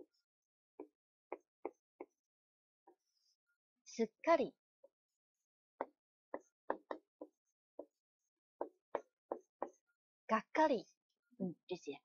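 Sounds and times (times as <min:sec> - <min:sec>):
marker tapping on whiteboard: 0:00.8 - 0:02.2, 0:05.8 - 0:08.0, 0:08.6 - 0:09.8.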